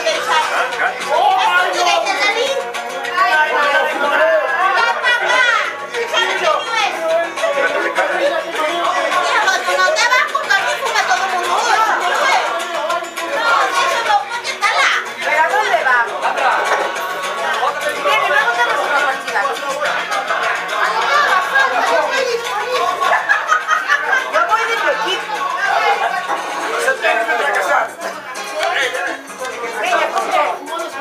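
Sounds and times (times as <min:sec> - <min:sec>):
people chattering: 0:00.0 - 0:31.0
people talking over one another: 0:00.0 - 0:31.0.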